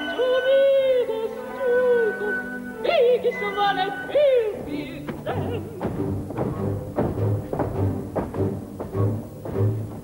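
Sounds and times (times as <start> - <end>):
woman singing yodel-like: 0.0 - 5.6.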